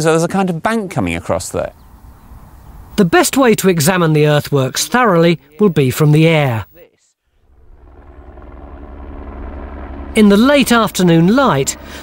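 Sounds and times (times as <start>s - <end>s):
helicopter rotor and engine: 7.4s - 12.0s.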